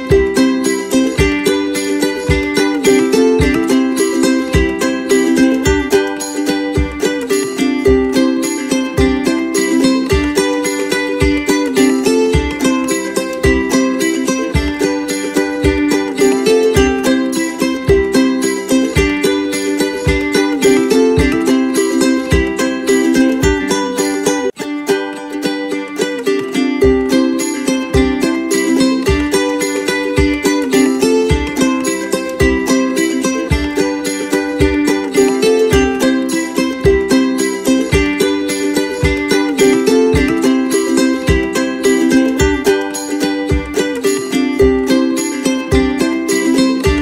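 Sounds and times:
plucked-string tune over a beat: 0.0 - 47.0.

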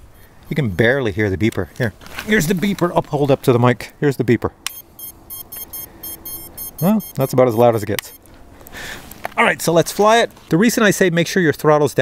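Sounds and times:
rapid high-pitched beeps: 4.7 - 8.3.

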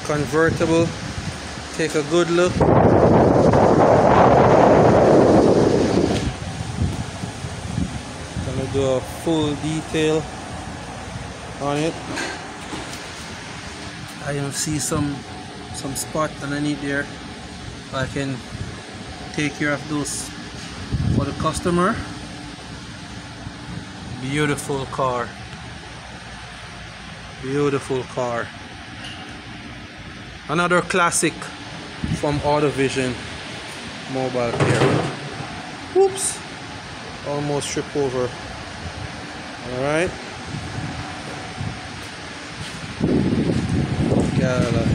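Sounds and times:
ventilation hiss and hum: 0.0 - 44.9
wind buffeting microphone: 0.2 - 11.5, 16.8 - 22.3, 40.4 - 44.9.

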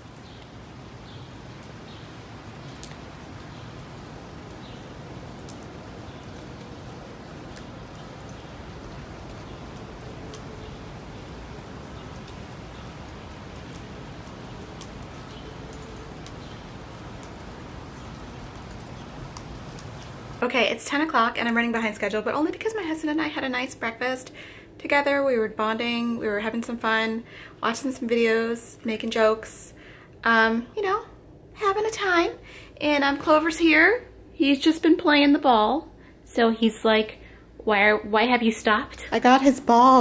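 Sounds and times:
rain falling on pavement: 0.0 - 28.3.

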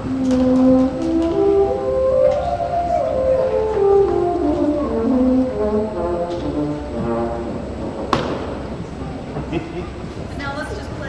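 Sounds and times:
woodwind quintet playing short notes: 0.0 - 8.7
sharp knock: 8.0 - 8.6.

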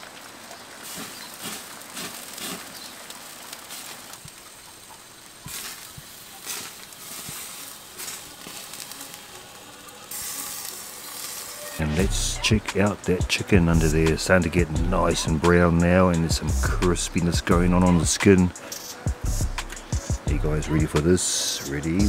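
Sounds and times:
charcoal sizzling and crackling: 0.0 - 22.0.

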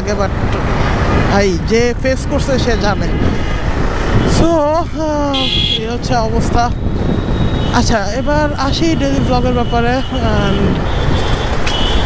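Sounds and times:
wind and road rush: 0.0 - 12.0.

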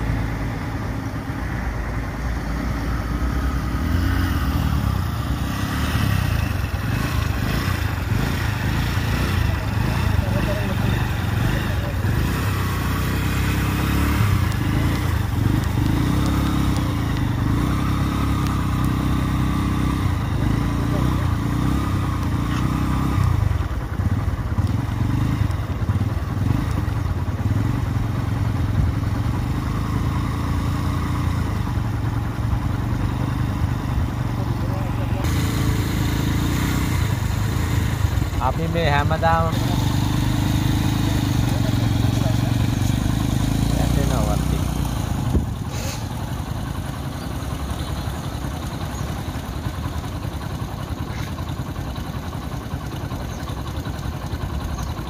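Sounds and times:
vehicle engines rumbling: 0.0 - 55.0.

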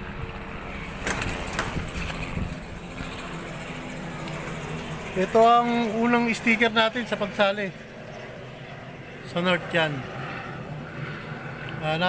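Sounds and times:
engine-like hum: 0.0 - 12.0.

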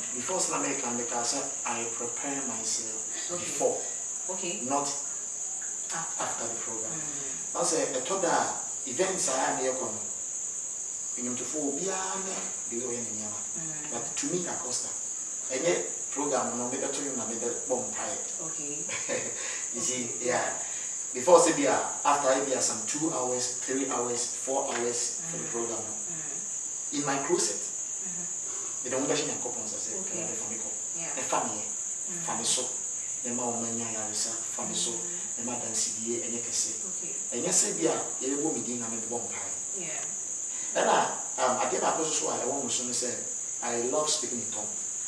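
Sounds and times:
man speaking: 0.0 - 4.0, 6.0 - 10.1, 11.2 - 18.3, 18.9 - 26.1, 27.0 - 27.7, 28.8 - 39.6, 40.7 - 44.8
high-pitched whine: 0.0 - 10.1, 21.2 - 26.3, 26.9 - 39.9
insect trill: 0.0 - 45.0
quiet talk: 0.2 - 5.0, 21.2 - 26.4, 27.0 - 32.7, 33.3 - 40.1.

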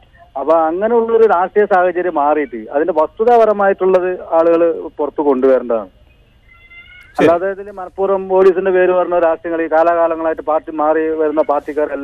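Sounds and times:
man speaking over telephone: 7.2 - 12.0.

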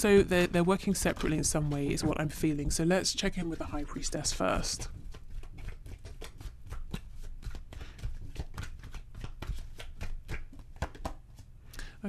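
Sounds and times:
cards being shuffled: 3.5 - 11.5.

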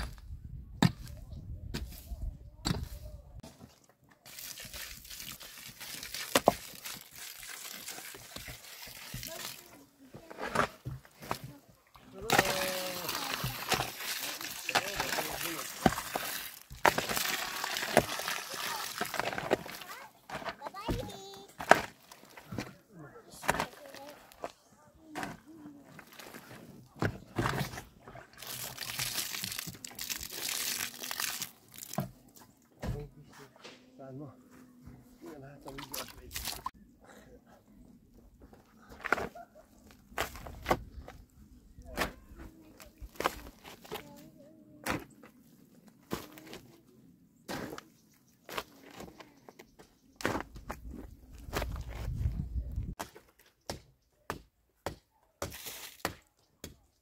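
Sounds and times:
water splashing onto stones: 4.2 - 9.8, 12.1 - 20.0, 27.4 - 32.2, 35.7 - 36.7
shovel scraping stones: 4.2 - 11.5, 12.2 - 22.7, 23.3 - 24.5, 47.5 - 47.8, 55.4 - 56.2.

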